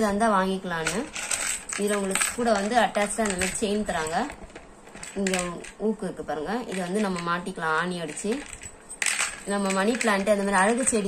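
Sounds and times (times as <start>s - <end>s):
person speaking: 0.0s - 11.0s
metal chain clinking and jangling: 0.8s - 5.8s, 8.1s - 11.0s.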